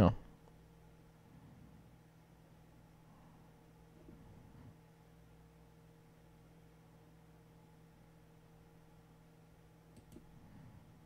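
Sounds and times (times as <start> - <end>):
faint steady hum: 0.0 - 11.0
computer mouse clicks: 9.9 - 10.3.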